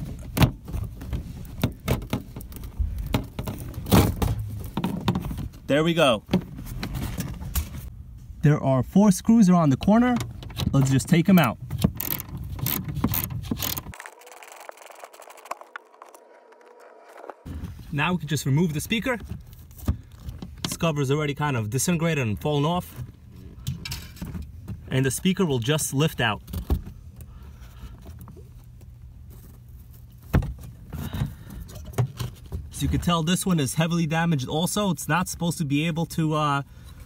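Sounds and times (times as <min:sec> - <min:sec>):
low steady hum: 0:00.0 - 0:37.0
hand ratchet clicking: 0:11.9 - 0:14.0.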